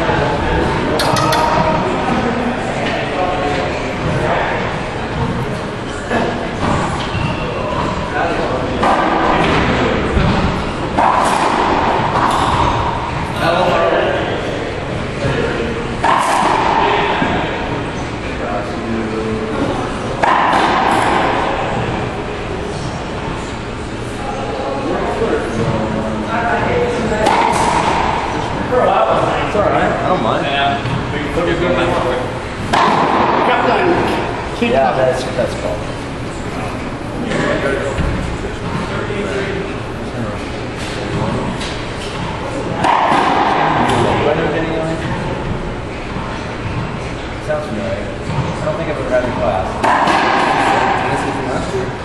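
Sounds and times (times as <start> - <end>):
indistinct talking echoing: 0.0 - 52.0
racquetball being struck: 1.0 - 2.2, 8.7 - 13.7, 16.0 - 17.8, 20.0 - 22.3, 26.8 - 29.4, 32.6 - 34.8, 41.0 - 47.0, 48.2 - 51.6.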